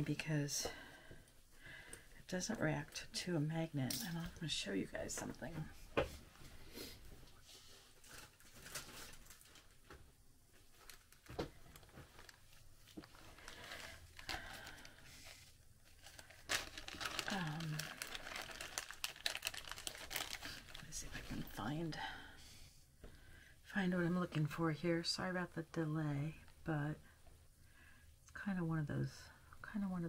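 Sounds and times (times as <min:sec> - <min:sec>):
plastic bags crinkling: 0:08.0 - 0:09.9, 0:10.7 - 0:21.8.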